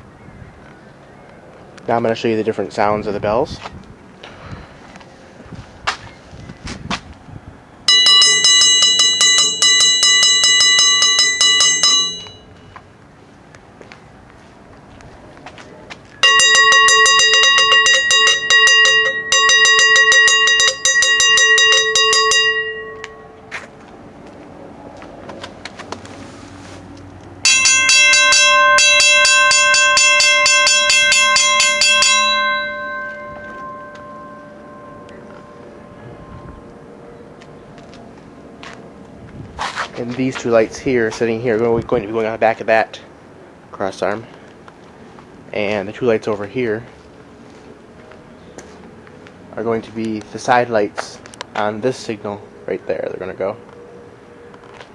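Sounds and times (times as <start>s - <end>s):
railroad crossing bells ringing: 7.9s - 12.8s, 16.2s - 23.6s, 27.4s - 36.7s.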